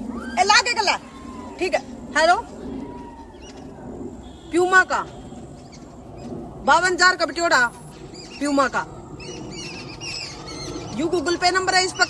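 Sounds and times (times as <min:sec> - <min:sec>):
small birds chirping: 0:02.6 - 0:12.0.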